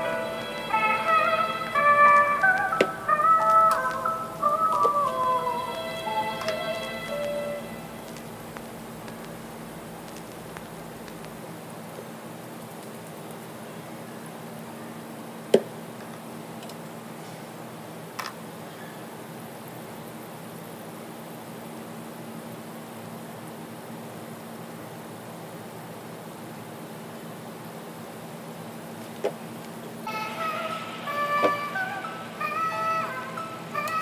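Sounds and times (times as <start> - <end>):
oil popping: 2.1 - 11.5
fries sizzling in hot oil: 5.0 - 31.6.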